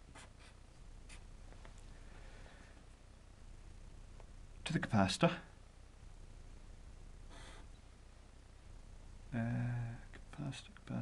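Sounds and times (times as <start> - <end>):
marker pen scratching on paper: 0.0 - 1.3.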